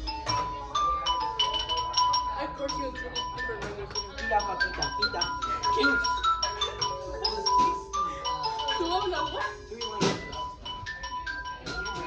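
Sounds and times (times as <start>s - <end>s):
mallet percussion notes: 0.0s - 12.0s
voices: 0.0s - 12.0s.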